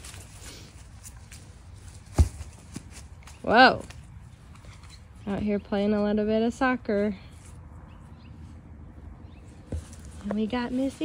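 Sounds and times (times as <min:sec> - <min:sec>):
ball kicked on grass: 0:00.0 - 0:04.0, 0:09.6 - 0:11.0.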